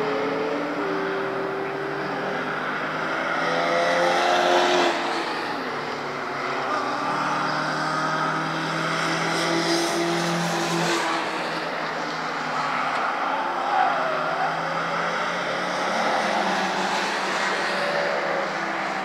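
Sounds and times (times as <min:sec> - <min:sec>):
race car engines accelerating: 0:00.0 - 0:19.0.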